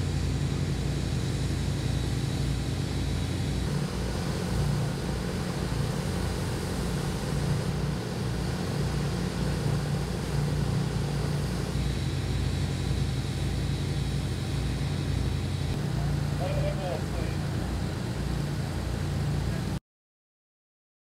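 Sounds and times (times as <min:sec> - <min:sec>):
low machinery drone: 0:00.0 - 0:19.8.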